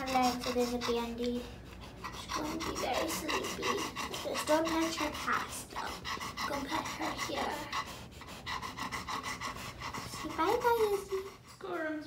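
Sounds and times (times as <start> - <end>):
dog panting rapidly: 0.0 - 12.0.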